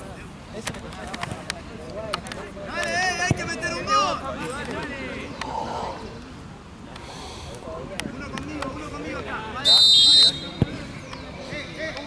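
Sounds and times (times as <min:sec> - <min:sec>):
referee's whistle blast: 0:09.6 - 0:10.6.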